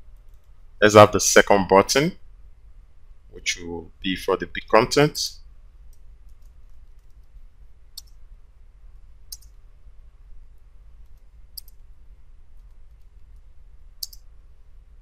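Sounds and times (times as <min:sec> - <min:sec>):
low hum: 0:00.0 - 0:15.0
keyboard typing: 0:11.0 - 0:11.8, 0:12.6 - 0:14.3.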